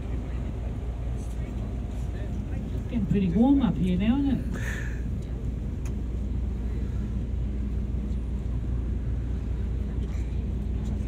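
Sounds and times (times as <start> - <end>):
ferry engine rumbling: 0.0 - 11.0.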